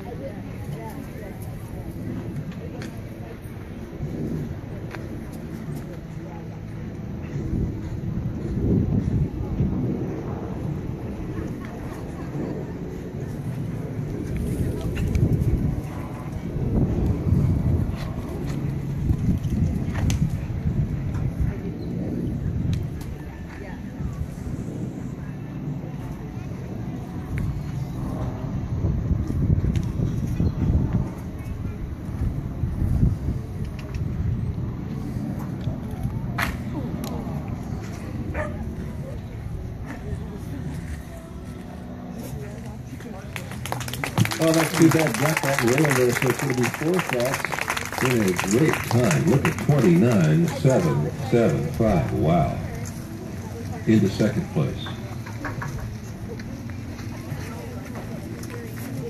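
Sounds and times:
wind rumbling on microphone: 0.0s - 59.0s
indistinct voices: 34.9s - 59.0s.

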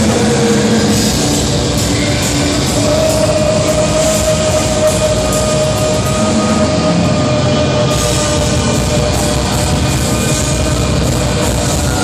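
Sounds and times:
black metal band playing: 0.0s - 12.0s.

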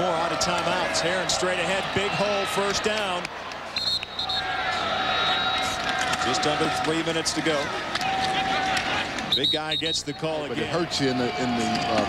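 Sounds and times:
stadium crowd noise: 0.0s - 12.0s
referee's whistle: 3.8s - 5.8s, 9.2s - 10.6s.

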